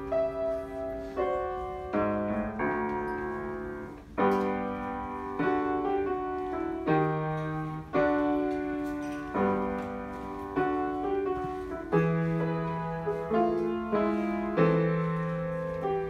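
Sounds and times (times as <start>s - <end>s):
slow piano chords: 0.0s - 16.0s.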